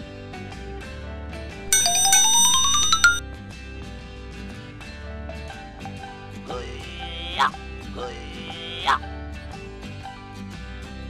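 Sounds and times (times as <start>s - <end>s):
background music: 1.7s - 3.2s
rising chime run ending in ping: 1.7s - 3.2s.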